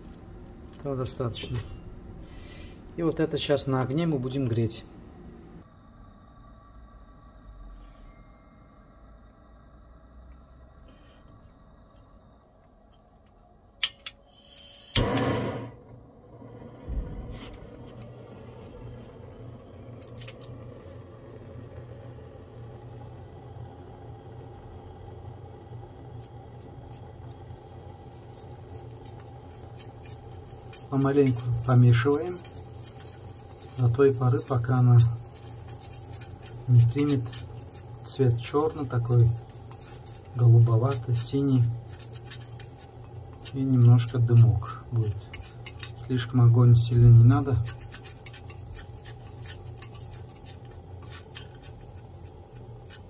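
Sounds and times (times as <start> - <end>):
gas flame whoosh: 14.3 - 19.6
gas flame rushing: 14.3 - 19.9.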